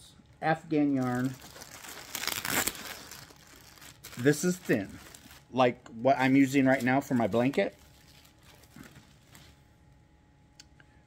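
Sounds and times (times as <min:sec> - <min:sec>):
plastic bag crinkling: 0:00.8 - 0:05.6, 0:06.2 - 0:09.6.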